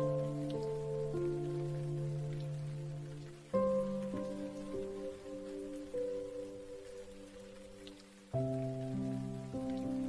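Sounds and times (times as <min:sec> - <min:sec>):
falling rain: 0:00.0 - 0:10.0
slow piano music: 0:00.0 - 0:10.0.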